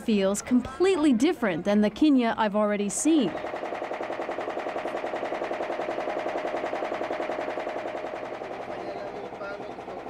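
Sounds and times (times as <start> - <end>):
boat engine puttering: 3.1 - 10.0.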